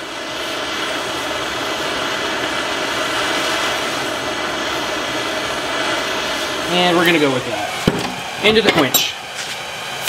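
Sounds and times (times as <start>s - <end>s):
gas torch flame rushing: 0.0s - 10.0s.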